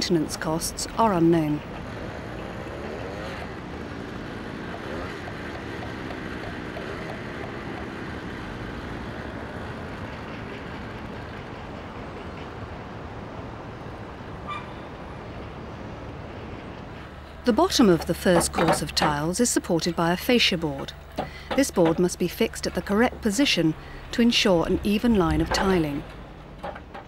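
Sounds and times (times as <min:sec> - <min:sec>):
building site background noise: 0:00.0 - 0:27.0.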